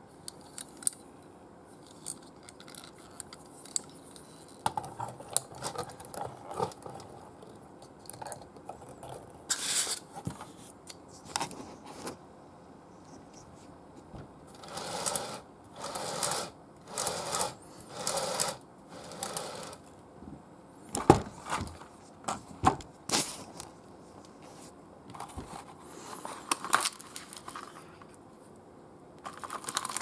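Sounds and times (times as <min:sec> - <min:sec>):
toy clicks and knocks: 0:14.6 - 0:19.8.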